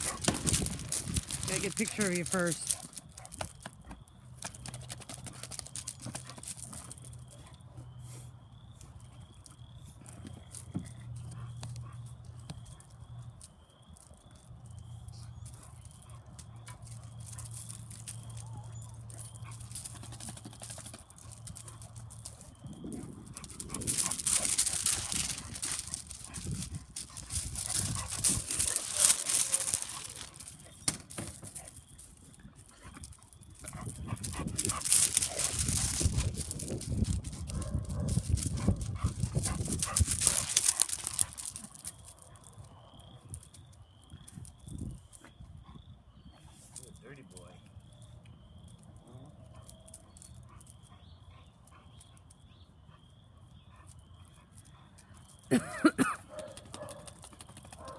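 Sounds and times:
footsteps on gravel: 0:00.0 - 0:03.6, 0:21.1 - 0:30.9, 0:33.0 - 0:42.0.

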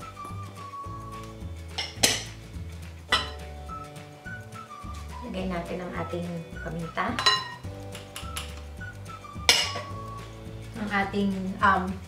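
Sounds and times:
background music: 0:00.0 - 0:12.0
glass bowls clinking: 0:01.7 - 0:02.4, 0:03.1 - 0:03.5, 0:07.2 - 0:08.6, 0:09.5 - 0:09.9.

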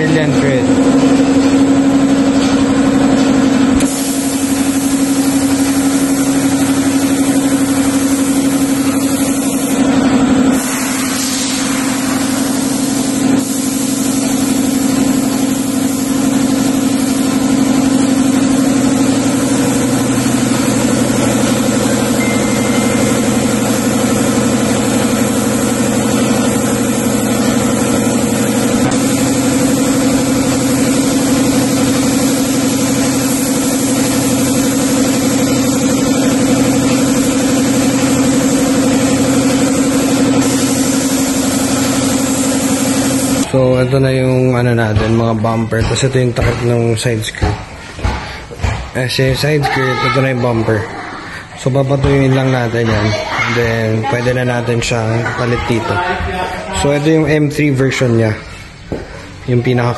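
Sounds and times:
air compressor humming: 0:00.0 - 0:59.9
spray gun hissing: 0:03.7 - 0:43.5.

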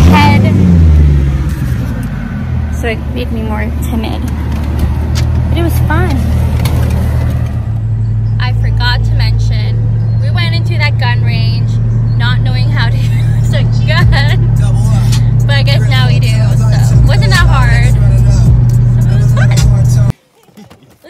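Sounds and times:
woman talking: 0:00.0 - 0:00.6, 0:02.8 - 0:04.3, 0:05.5 - 0:06.3, 0:08.4 - 0:14.4, 0:15.4 - 0:18.0
car engine and road noise: 0:00.0 - 0:21.0.

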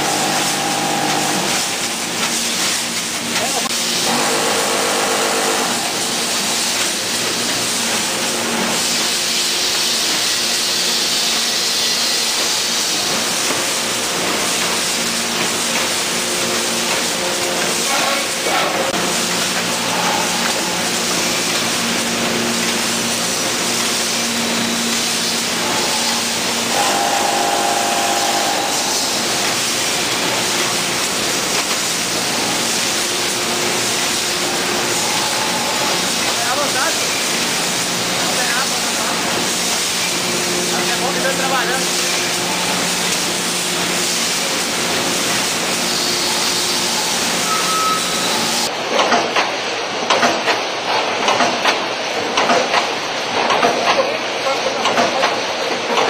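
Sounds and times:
steady machine noise: 0:00.0 - 0:48.8
brief higher tone: 0:47.4 - 0:48.4.

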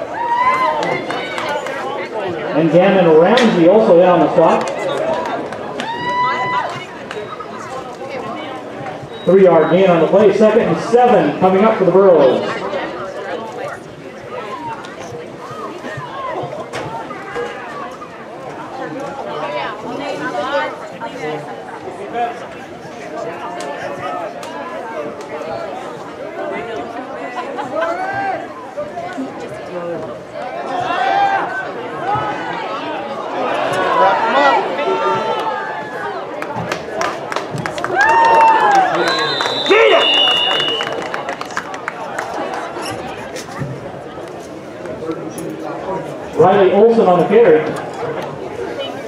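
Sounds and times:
crowd shouts and cheers: 0:00.0 - 0:07.7, 0:26.8 - 0:29.3, 0:30.2 - 0:43.8
crowd chattering: 0:00.0 - 0:49.0
shrill whistle blast: 0:39.0 - 0:41.0.

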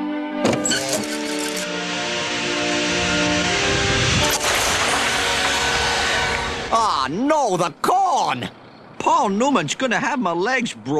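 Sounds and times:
held orchestral chords: 0:01.6 - 0:07.0
rushing hiss and rumble: 0:01.7 - 0:07.2
sharp hit: 0:02.0 - 0:06.8.

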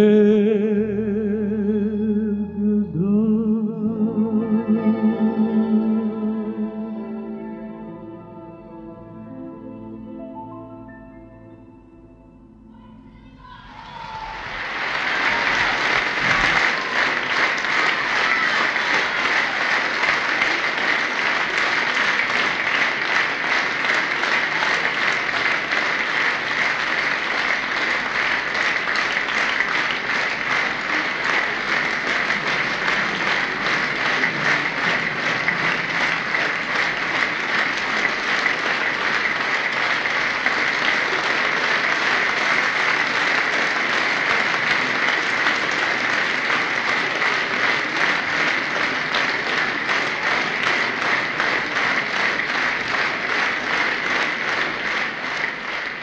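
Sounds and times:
audience applauding: 0:13.9 - 0:56.0.

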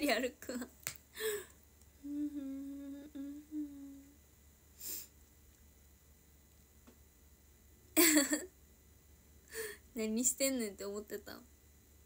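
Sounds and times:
woman humming: 0:01.2 - 0:04.2.

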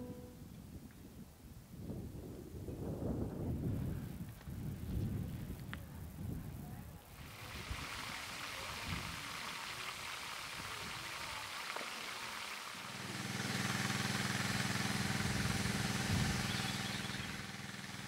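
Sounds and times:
outdoor background noise: 0:00.0 - 0:18.0
steady low hum: 0:12.8 - 0:18.0.

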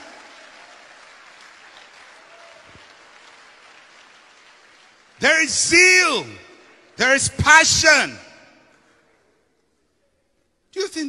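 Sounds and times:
faint applause: 0:00.0 - 0:07.0.

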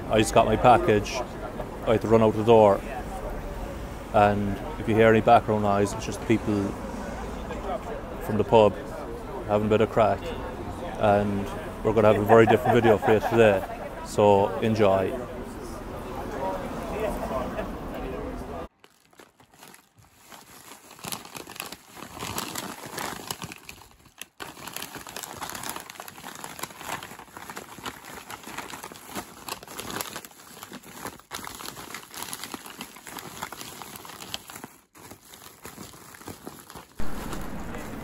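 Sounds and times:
paper bag crinkling: 0:18.7 - 0:38.0
plastic packing crackling: 0:18.7 - 0:38.0.

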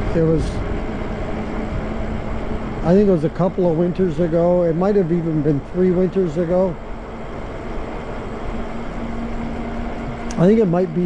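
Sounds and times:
wind rushing over microphone: 0:00.0 - 0:10.3
bike tyres on paved street: 0:00.0 - 0:11.0.

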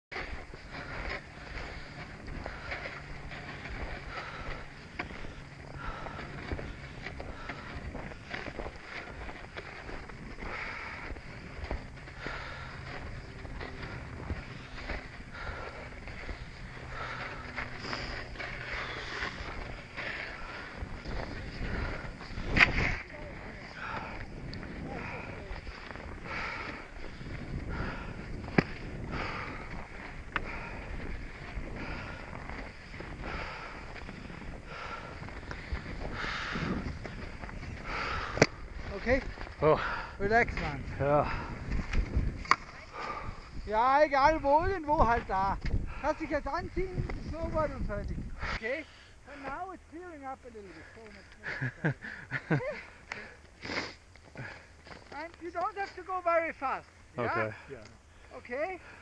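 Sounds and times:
footsteps crunching through snow: 0:00.1 - 0:40.0
indistinct voices: 0:00.2 - 0:41.7.

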